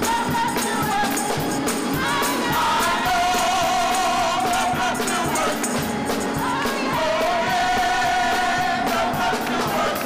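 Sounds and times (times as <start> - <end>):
instrumental backing with beat: 0.0 - 10.0
women singing gospel in harmony: 0.0 - 10.0.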